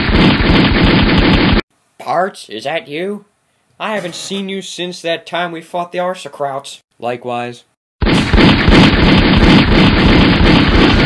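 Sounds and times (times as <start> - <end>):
automatic gunfire: 8.0 - 11.0.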